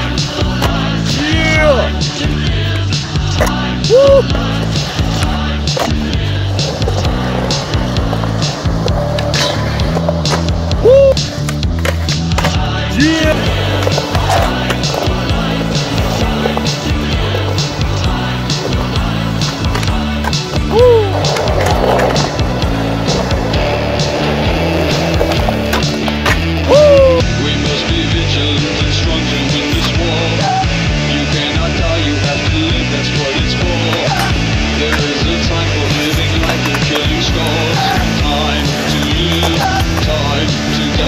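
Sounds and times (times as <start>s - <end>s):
skateboard popping and landing: 0.0s - 1.2s, 1.8s - 27.2s, 31.4s - 41.0s
rock music with steady beat: 0.0s - 41.0s
skateboard wheels rolling on concrete: 0.0s - 41.0s.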